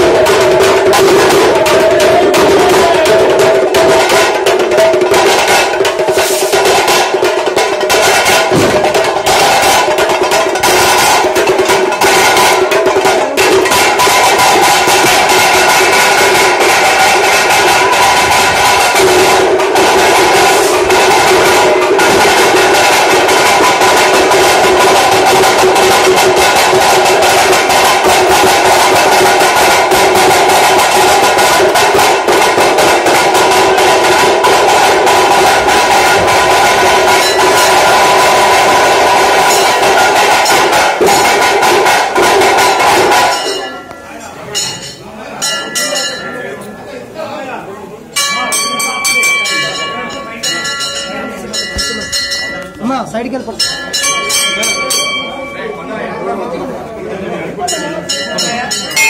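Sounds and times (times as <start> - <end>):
murmur of voices: 0.0 - 59.0
rapid drumming: 0.0 - 59.0
temple bell ringing: 29.7 - 41.5, 42.6 - 47.0, 48.1 - 56.8, 57.6 - 59.0
steady held tone: 48.1 - 57.0.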